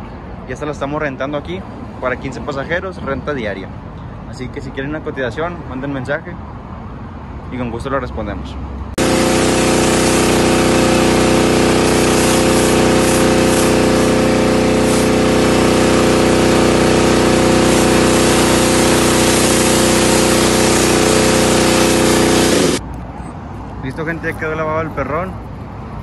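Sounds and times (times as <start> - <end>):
pressure washer running: 9.0 - 22.8.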